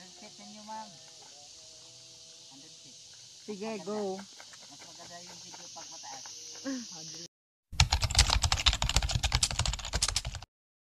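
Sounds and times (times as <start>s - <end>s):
keyboard typing clicks: 7.8s - 10.5s.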